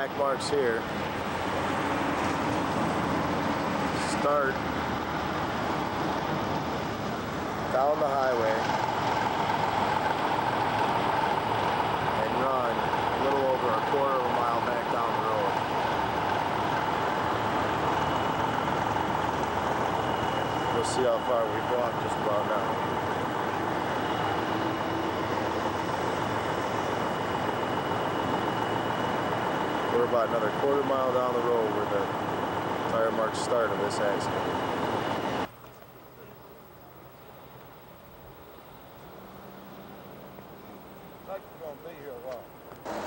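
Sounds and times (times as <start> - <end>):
constant hum: 0.0 - 43.0
idling trucks in stopped traffic: 0.0 - 43.0.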